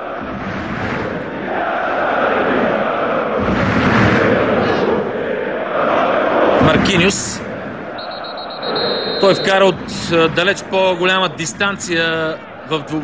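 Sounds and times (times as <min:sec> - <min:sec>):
stadium crowd chanting: 0:00.0 - 0:13.0.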